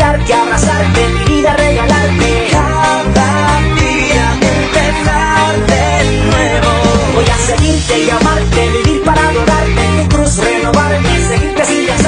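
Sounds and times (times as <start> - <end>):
man singing pop song with band: 0.0 - 12.0.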